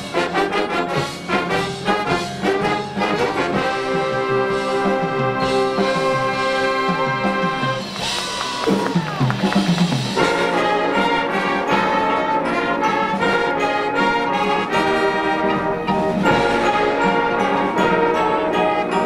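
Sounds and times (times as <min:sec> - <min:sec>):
brass sustaining chords: 0:00.0 - 0:08.7, 0:09.3 - 0:19.0
percussion hits: 0:00.9 - 0:11.5.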